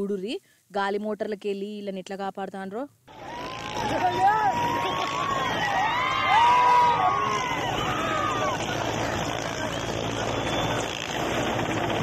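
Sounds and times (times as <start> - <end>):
helicopter hovering: 3.1 - 12.0.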